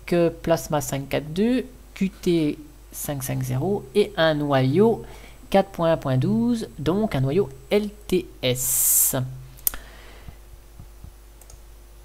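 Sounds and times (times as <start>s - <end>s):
person speaking: 0.0s - 9.5s
computer mouse click: 11.4s - 11.6s.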